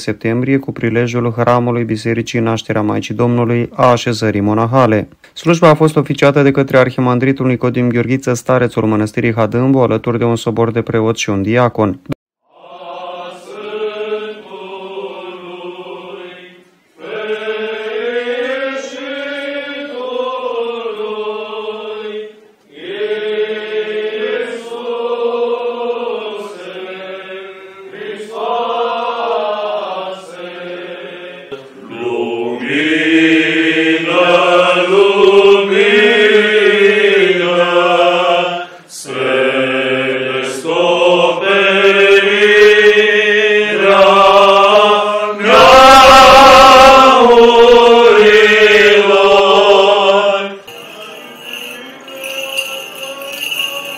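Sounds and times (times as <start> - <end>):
men chanting: 12.5 - 53.9.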